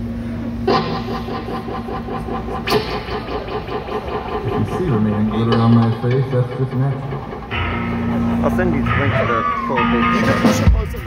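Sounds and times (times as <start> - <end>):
amplifier hum: 0.0 - 11.0
electric guitar chord ringing: 0.0 - 11.0.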